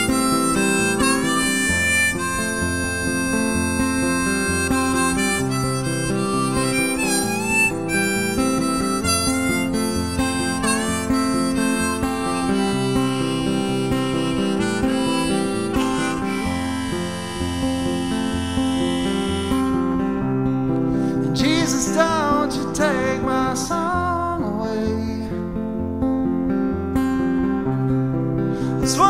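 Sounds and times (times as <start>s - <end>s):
blues harmonica: 0.0s - 25.3s, 26.5s - 29.0s
acoustic guitar bass line: 0.0s - 29.0s.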